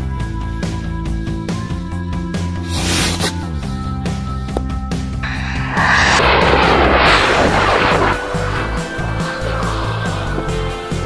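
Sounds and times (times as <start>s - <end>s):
firework rocket hissing: 2.6s - 3.4s.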